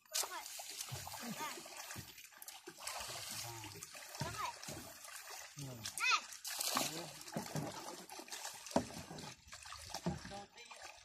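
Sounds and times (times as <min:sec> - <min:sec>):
water splashing: 0:00.0 - 0:11.0
men talking: 0:05.5 - 0:06.0.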